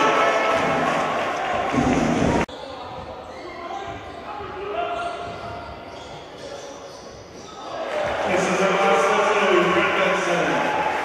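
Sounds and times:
players and spectators voices: 0:00.0 - 0:11.0.

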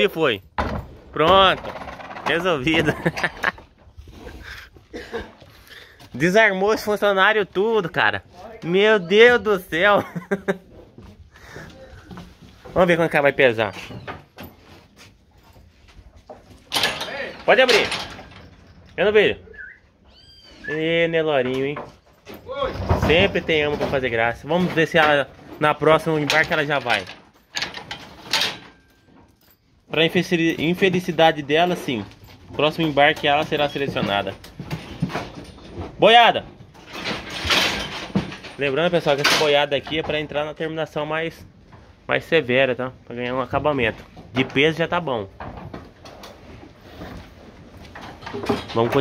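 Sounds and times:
wooden chute rattling: 0:00.0 - 0:04.6, 0:16.3 - 0:49.0.

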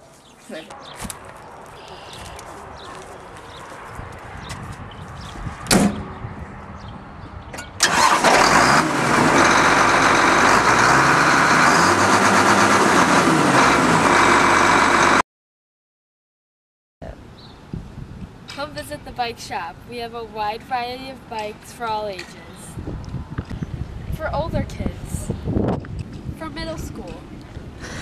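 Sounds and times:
tractor diesel engine running: 0:07.8 - 0:15.2.

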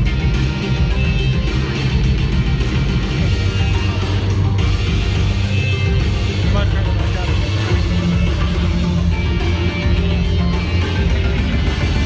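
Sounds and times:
loud music with a steady beat: 0:00.0 - 0:12.0.

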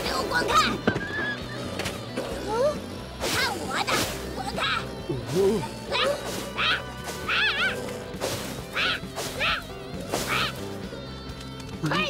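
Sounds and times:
soft background music: 0:00.0 - 0:12.0
cartoon monkey squealing: 0:05.9 - 0:07.8, 0:08.7 - 0:10.6.

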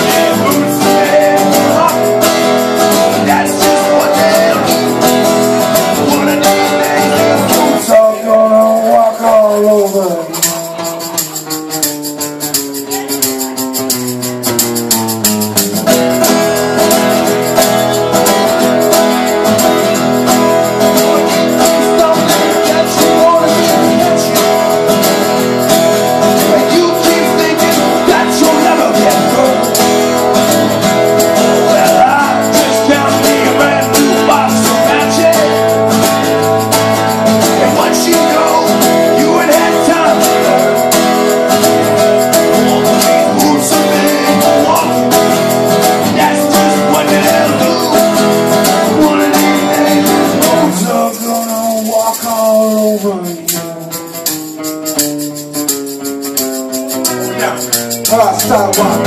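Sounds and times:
person singing: 0:00.0 - 0:11.5, 0:16.2 - 0:54.0, 0:57.0 - 0:59.0
strummed acoustic guitars: 0:00.0 - 0:59.0
tambourine shaken: 0:00.0 - 0:59.0.

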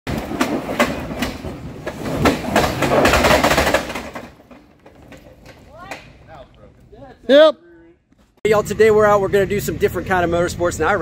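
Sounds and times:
sharp knocks and clacks: 0:00.1 - 0:06.3
tyres spinning in dirt: 0:00.1 - 0:06.3.

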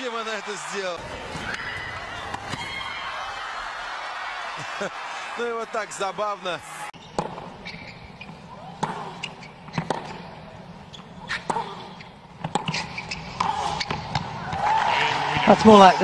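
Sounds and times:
tennis racket striking ball: 0:07.1 - 0:14.3.

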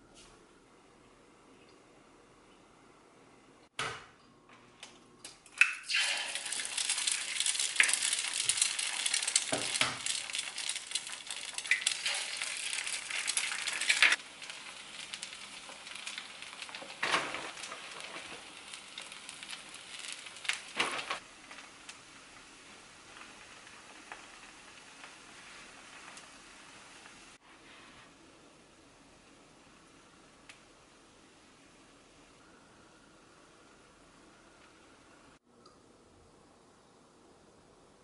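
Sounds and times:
eggs sizzling in a pan: 0:05.6 - 0:35.5.

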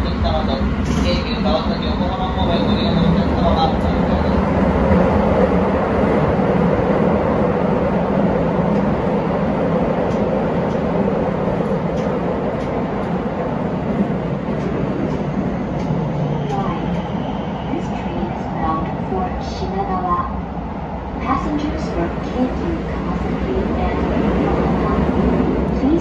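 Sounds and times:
train wheels rumbling on rail: 0:00.0 - 0:26.0.

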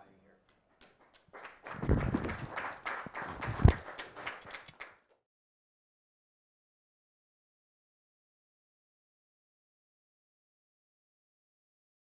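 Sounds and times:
audience clapping: 0:00.4 - 0:05.2.

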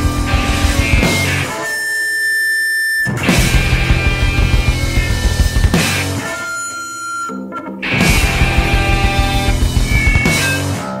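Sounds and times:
noise rock band playing: 0:00.0 - 0:01.6, 0:03.1 - 0:06.8, 0:07.8 - 0:11.0
sustained high tone ringing: 0:01.4 - 0:10.6.

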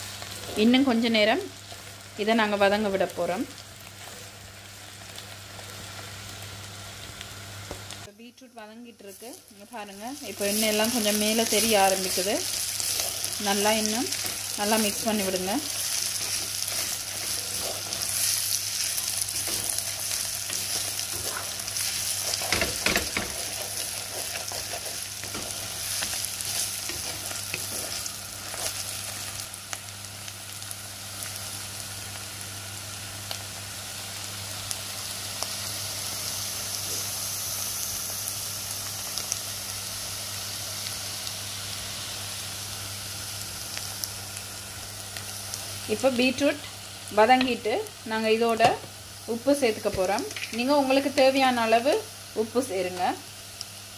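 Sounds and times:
vegetables sizzling in oil: 0:00.0 - 0:53.9.

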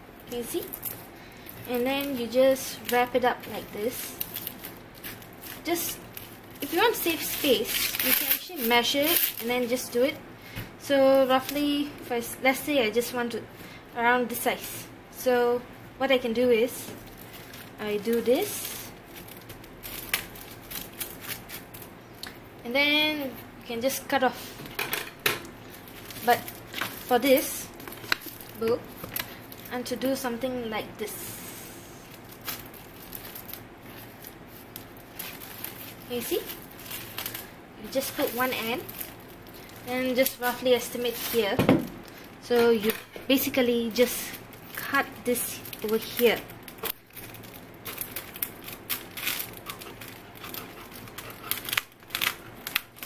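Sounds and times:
plastic wrap rustling: 0:00.1 - 0:10.2, 0:15.5 - 0:53.0
scissors cutting plastic film: 0:00.3 - 0:10.2, 0:17.1 - 0:22.3, 0:32.1 - 0:53.0.

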